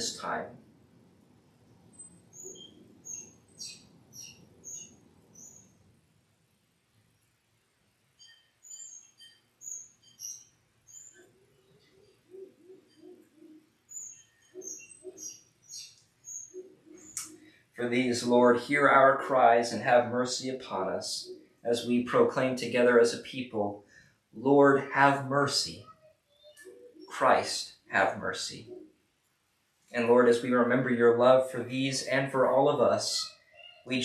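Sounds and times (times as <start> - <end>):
small birds chirping: 1.9 - 5.9, 8.2 - 17.6, 25.7 - 29.0, 32.5 - 34.0.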